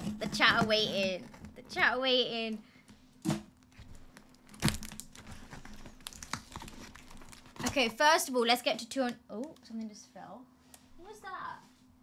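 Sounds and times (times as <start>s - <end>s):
tape and wrapping crinkling tearing: 3.6s - 8.0s.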